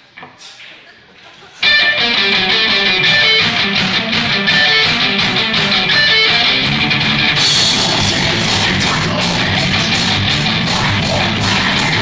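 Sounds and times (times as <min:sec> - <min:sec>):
electric guitar strumming: 0:01.6 - 0:12.0
live band playing: 0:01.6 - 0:12.0.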